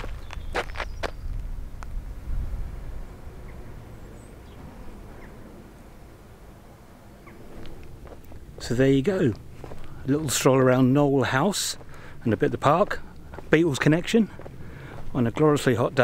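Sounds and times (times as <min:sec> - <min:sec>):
wind rumble on microphone: 0:00.0 - 0:05.8.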